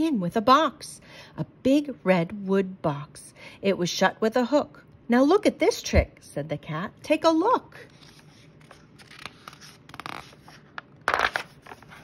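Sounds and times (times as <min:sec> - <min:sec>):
page turning paper rustling: 0:07.8 - 0:12.0.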